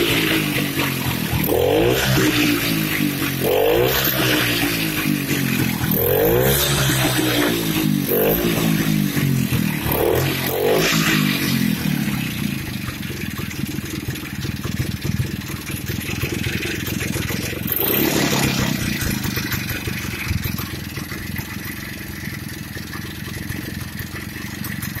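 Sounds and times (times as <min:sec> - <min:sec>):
two-stroke engine fast idle: 0:00.0 - 0:25.0.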